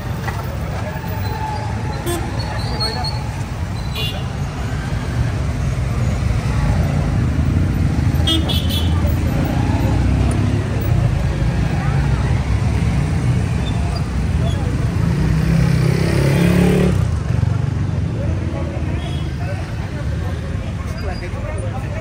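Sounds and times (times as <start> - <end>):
road traffic rumble: 0.0 - 22.0.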